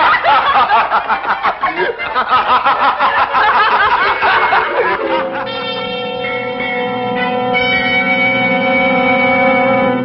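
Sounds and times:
laughter: 0.0s - 5.8s.

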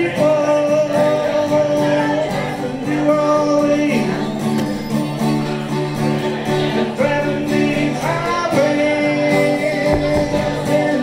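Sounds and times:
man singing: 0.0s - 4.8s, 5.5s - 11.0s
acoustic guitar: 0.0s - 11.0s.

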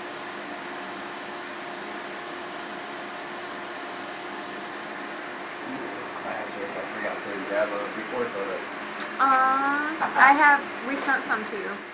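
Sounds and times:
faint equipment hum: 0.0s - 11.9s
fan noise: 0.0s - 11.9s.

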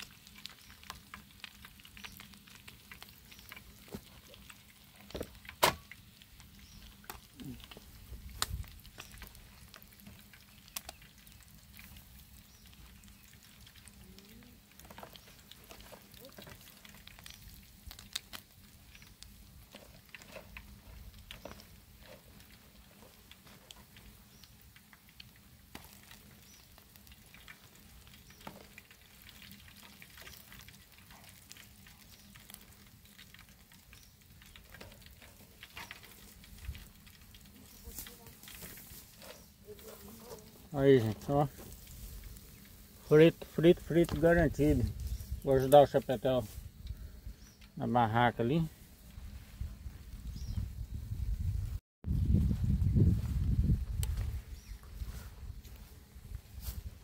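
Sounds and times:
fish sizzling in oil: 0.0s - 51.2s, 52.5s - 57.0s.

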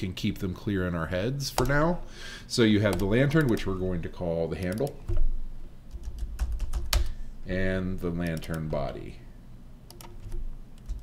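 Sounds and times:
computer keyboard key clicks: 2.9s - 3.7s, 9.9s - 11.0s.

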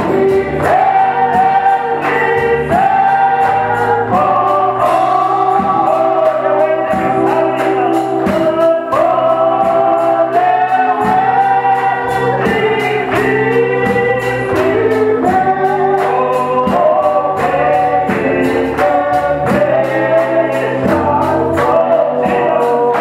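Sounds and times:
instrumental backing with beat: 0.0s - 23.0s
voices singing along: 0.0s - 23.0s.

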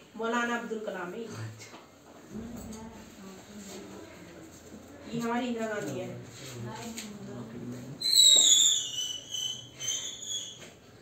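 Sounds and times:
high-pitched whistling squeal: 8.0s - 10.7s.

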